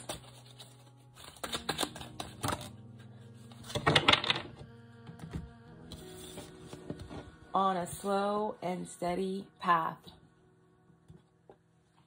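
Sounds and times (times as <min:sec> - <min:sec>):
cards being shuffled: 0:00.0 - 0:02.8.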